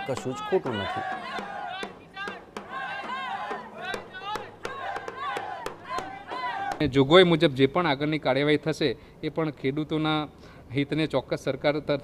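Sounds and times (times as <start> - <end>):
sharp percussive beats: 0.0 - 6.9
group of voices chanting: 0.4 - 6.8.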